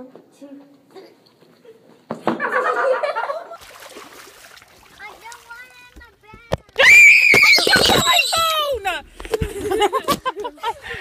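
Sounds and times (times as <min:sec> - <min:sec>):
water splashing: 0:03.6 - 0:06.2
child screaming: 0:06.8 - 0:08.8.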